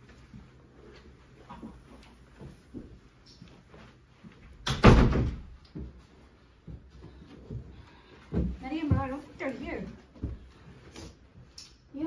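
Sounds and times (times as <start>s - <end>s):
door slamming shut: 4.6s - 5.5s.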